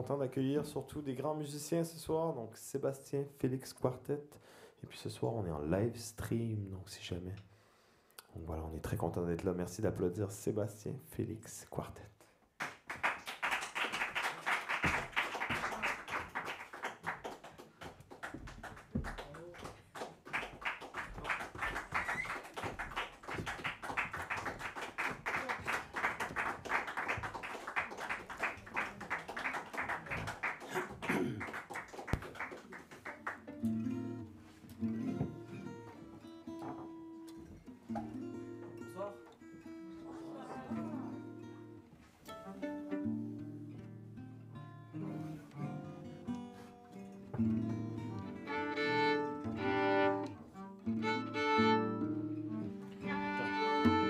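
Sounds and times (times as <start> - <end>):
audience applauding: 12.6 - 33.6
jazz violin guitars and bass: 42.3 - 46.2, 47.4 - 54.0.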